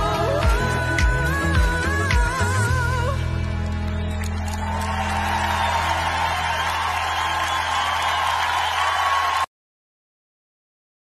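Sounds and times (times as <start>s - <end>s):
pop ballad accompaniment chord: 0.0s - 3.5s
audience applause and cheering: 3.2s - 9.5s.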